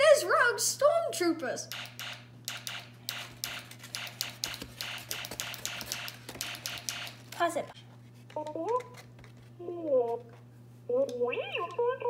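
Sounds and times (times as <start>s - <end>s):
steady low hum: 0.0s - 12.0s
sharp clicks and taps: 1.7s - 7.6s.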